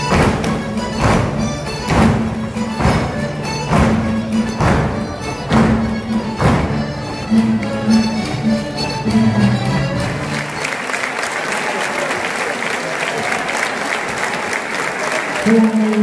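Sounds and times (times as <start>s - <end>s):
heavy thump on the beat: 0.0s - 7.7s
lively folk-dance music: 0.0s - 11.2s.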